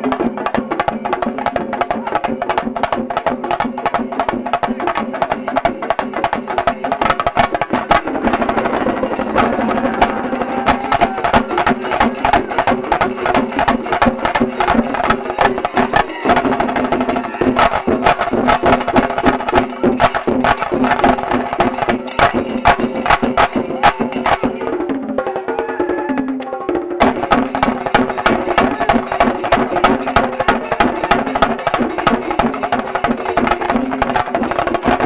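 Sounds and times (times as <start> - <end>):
drums beaten with sticks: 0.0 - 35.0.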